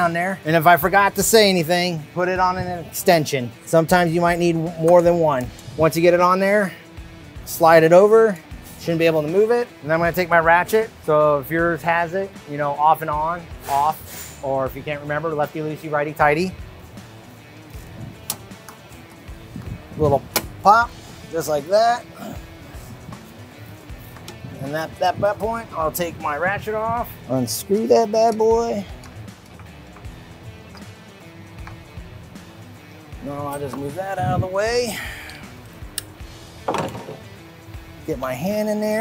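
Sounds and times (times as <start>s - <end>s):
background music: 0.0s - 39.0s
sharp click: 18.2s - 18.8s, 35.9s - 36.2s
socket scraping rattle: 36.6s - 37.3s.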